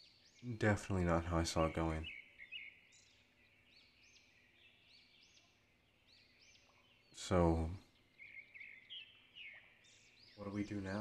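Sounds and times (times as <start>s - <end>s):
faint high bird chirps: 0.0s - 11.0s.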